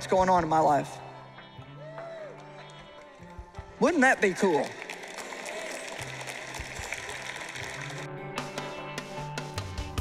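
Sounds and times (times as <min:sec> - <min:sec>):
audience applauding: 0:02.0 - 0:08.2.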